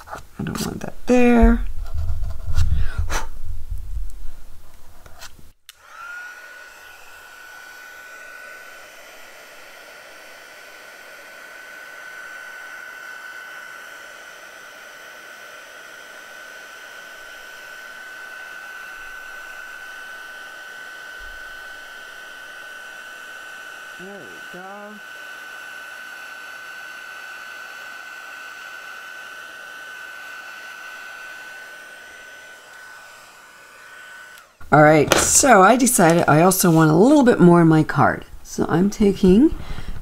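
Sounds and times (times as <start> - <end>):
card rubbing and knocking: 1.4 - 3.4, 35.0 - 36.8
heat gun fan whining: 5.2 - 37.6, 38.3 - 40.0.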